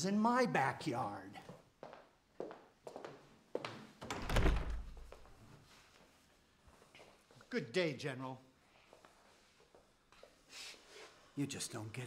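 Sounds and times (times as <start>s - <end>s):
footsteps on wooden floor: 1.5s - 5.4s
heavy wooden door thudding open: 4.1s - 5.2s.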